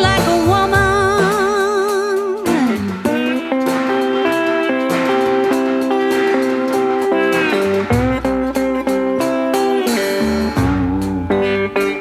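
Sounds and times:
person singing: 0.0 - 8.0
plucked guitar notes: 0.0 - 12.0.

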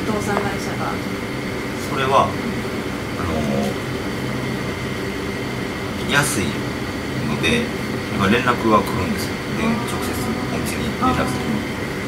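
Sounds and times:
air conditioner humming: 0.0 - 12.0
faint high whine: 0.0 - 12.0.

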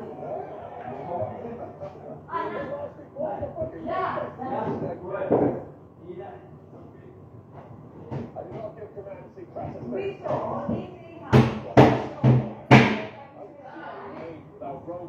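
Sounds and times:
loud knocks: 10.4 - 13.2.

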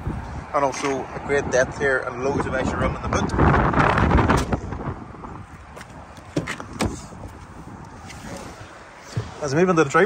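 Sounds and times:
car door unlatching and opening: 5.8 - 7.4.

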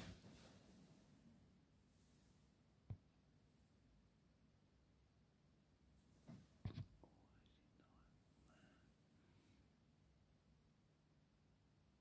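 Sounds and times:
faint whispering: 6.7 - 9.7.

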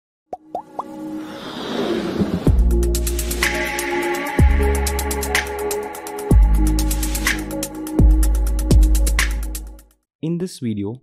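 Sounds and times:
musical riser: 0.8 - 7.6.

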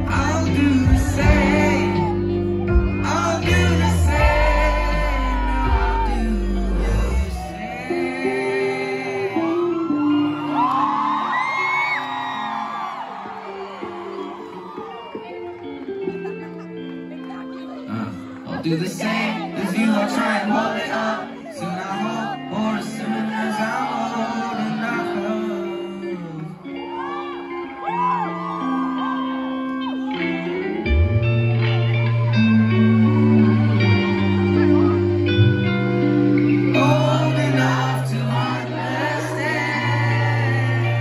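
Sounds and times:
crowd whooping and cheering: 0.0 - 41.0
live band playing held notes: 0.0 - 41.0.

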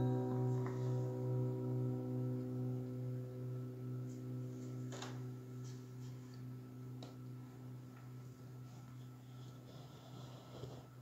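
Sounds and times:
acoustic guitar notes ringing: 0.0 - 9.9.

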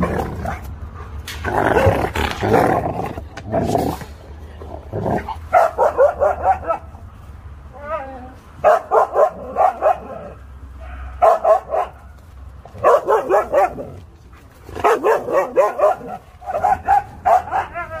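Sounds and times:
dogs barking: 1.6 - 2.2, 5.2 - 7.1, 8.6 - 18.0.

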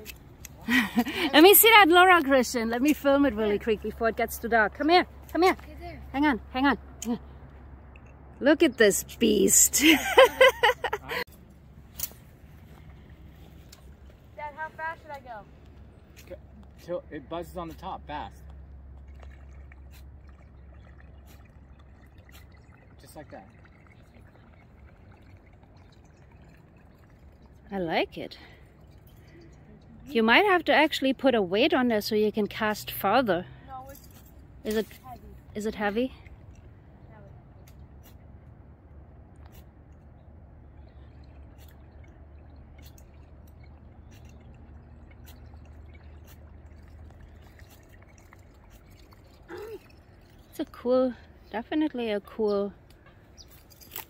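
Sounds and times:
low steady rumble: 0.0 - 53.9
faint clicks and drip-like ticks: 7.0 - 8.5, 17.6 - 30.8, 39.4 - 52.0
lure churning water: 17.7 - 30.2, 40.5 - 51.5.

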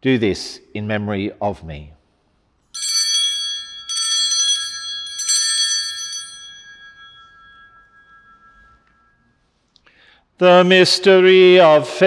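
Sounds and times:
altar bell ringing: 2.6 - 10.4.

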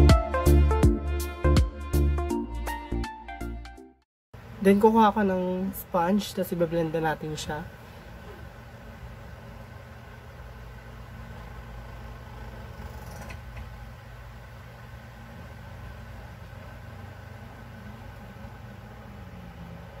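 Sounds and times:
low motor hum: 7.7 - 20.0.

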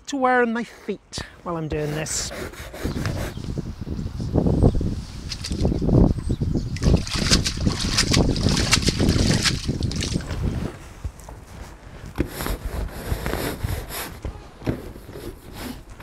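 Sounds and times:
deck brush scrubbing: 0.6 - 3.4, 6.8 - 10.7
wind buffeting microphone: 1.7 - 16.0.

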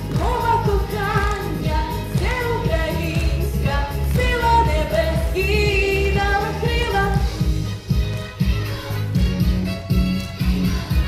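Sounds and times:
woman singing into a microphone: 0.0 - 7.4
backing music with steady beat: 0.0 - 11.0.

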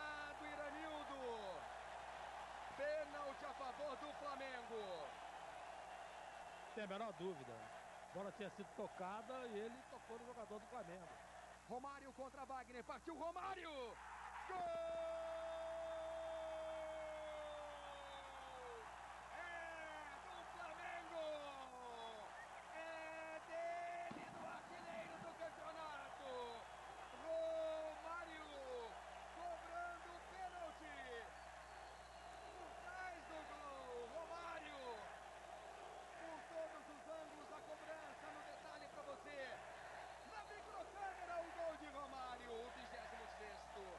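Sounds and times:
stadium crowd cheering: 0.0 - 43.9.

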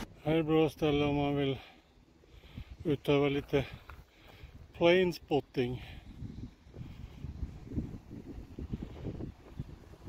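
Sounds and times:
wind buffeting microphone: 2.1 - 4.8, 5.6 - 10.0.

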